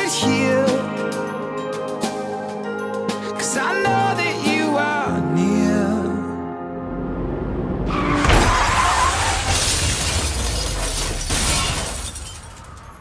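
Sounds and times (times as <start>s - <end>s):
car crash: 7.8s - 13.0s
glass shattering: 8.2s - 13.0s.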